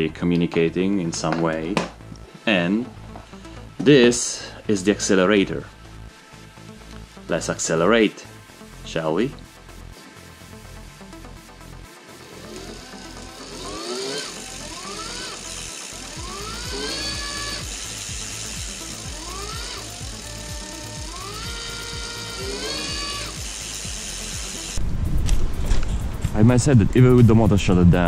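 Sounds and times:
electric motor whine: 0:11.7 - 0:24.8.

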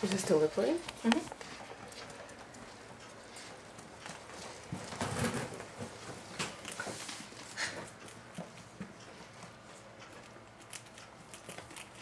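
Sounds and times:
rats scuffling on hard floor: 0:00.0 - 0:12.0
claws tapping and clicking: 0:07.8 - 0:12.0.

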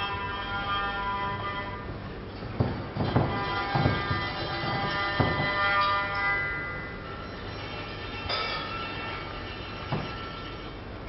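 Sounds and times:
acoustic instrumental music: 0:00.0 - 0:10.7.

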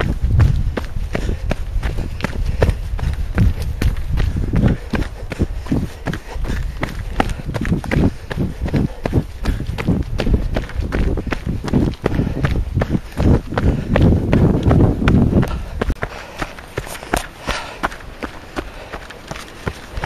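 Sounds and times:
running footsteps on dirt trail: 0:00.0 - 0:20.0.

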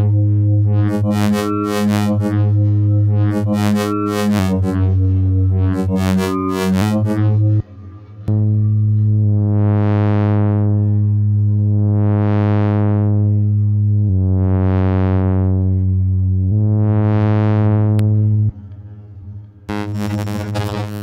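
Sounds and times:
low synth tone stepping pitches: 0:00.0 - 0:21.0.

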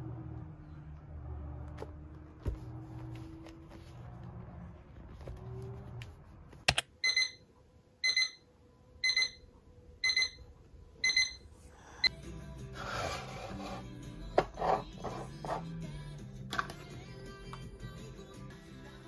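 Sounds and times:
alarm clock beeping: 0:07.0 - 0:11.5.

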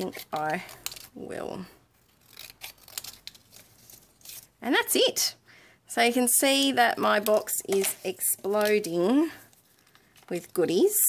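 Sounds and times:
scissors snipping paper: 0:02.1 - 0:04.5.

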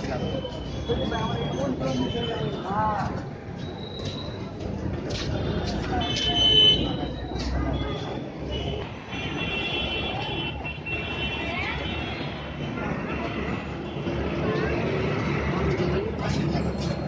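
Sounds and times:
people's voices: 0:00.0 - 0:17.0
motor vehicles running: 0:11.6 - 0:17.0.

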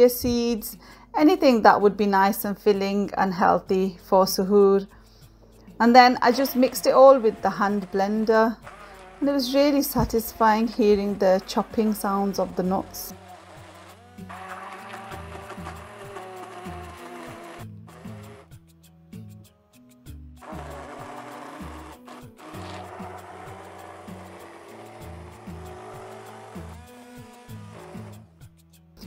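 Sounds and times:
background music with bass: 0:04.9 - 0:29.0
electric hand blender whirring: 0:06.2 - 0:18.5, 0:20.4 - 0:28.3.

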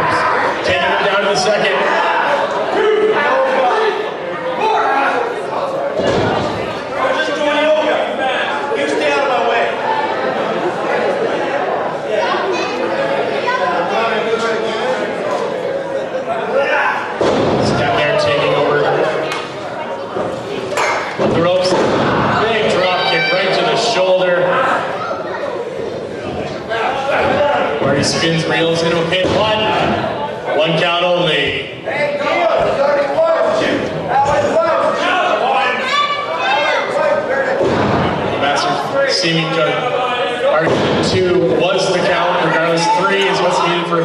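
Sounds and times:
voices in a large hall: 0:00.0 - 0:44.0
people shouting: 0:22.1 - 0:23.9, 0:32.2 - 0:38.2.

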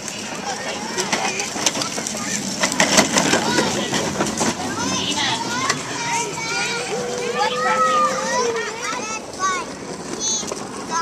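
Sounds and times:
children chattering and calling out: 0:00.0 - 0:11.0.

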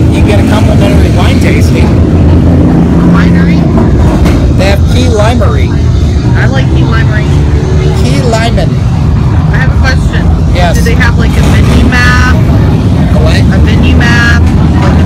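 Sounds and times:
indistinct voices talking: 0:00.0 - 0:15.0
loud low rumble: 0:00.0 - 0:15.0.

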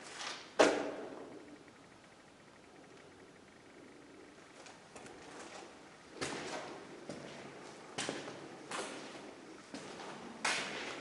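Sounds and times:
footsteps scuffing on gritty floor: 0:05.2 - 0:11.0.

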